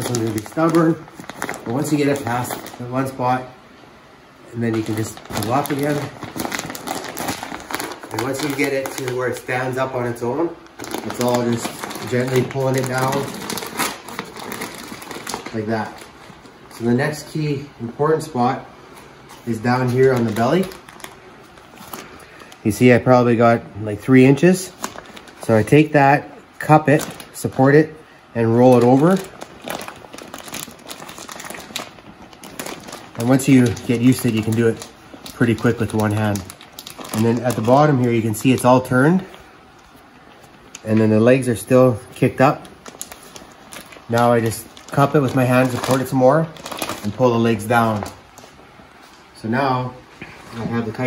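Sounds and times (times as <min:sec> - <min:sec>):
dry pelt crackling: 0:00.0 - 0:03.5, 0:04.4 - 0:51.0.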